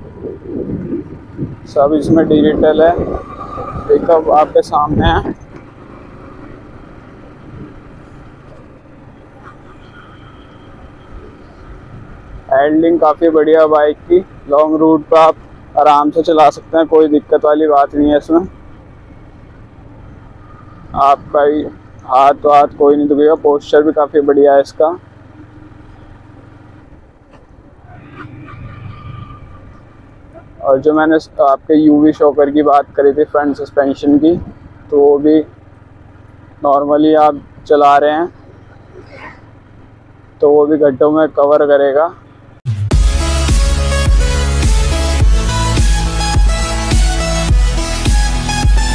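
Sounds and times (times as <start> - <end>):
motorcycle engine running: 0.0 - 48.9
wind and road noise: 0.0 - 48.9.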